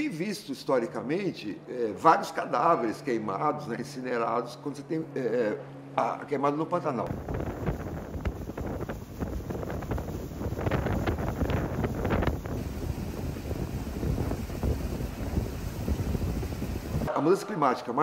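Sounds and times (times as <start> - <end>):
wind buffeting microphone: 7.1 - 17.1.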